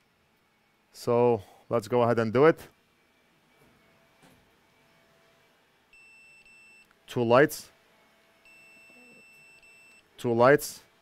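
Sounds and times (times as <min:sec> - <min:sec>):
high buzzer beep: 0:06.0 - 0:06.9, 0:08.4 - 0:10.0.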